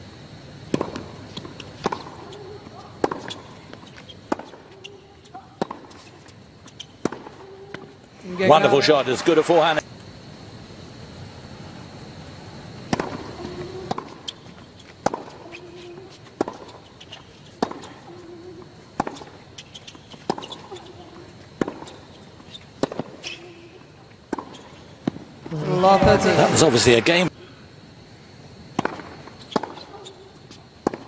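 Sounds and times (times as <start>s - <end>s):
tennis racquets striking ball: 0.7s - 7.9s, 12.8s - 27.2s, 28.7s - 31.0s.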